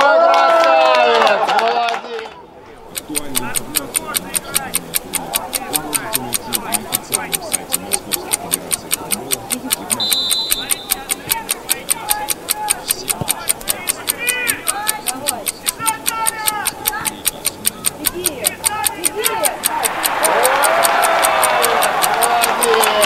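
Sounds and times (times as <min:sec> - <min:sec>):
rapid stopwatch ticking: 0:02.8 - 0:23.0
referee whistle blast: 0:10.0 - 0:10.9.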